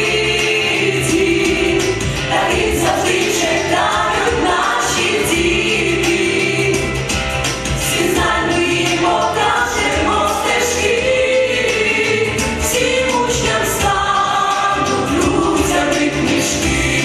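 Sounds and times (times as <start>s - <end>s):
vocal ensemble singing: 0.0s - 17.0s.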